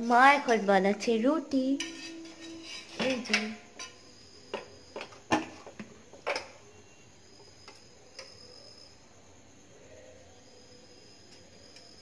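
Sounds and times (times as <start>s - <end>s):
kitchen utensils clinking: 1.6s - 6.6s.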